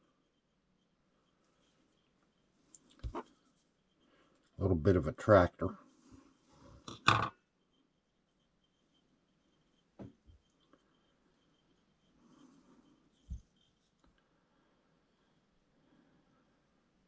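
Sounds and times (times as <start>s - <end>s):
faint high whine: 0.0s - 17.0s.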